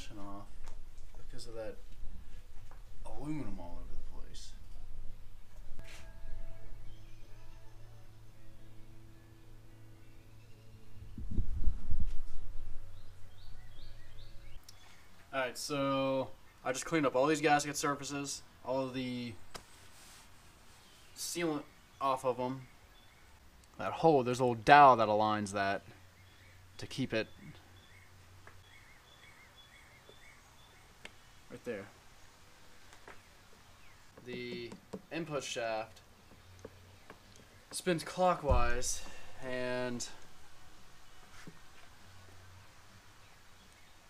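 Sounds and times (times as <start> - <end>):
low hum: 0.0 - 14.7.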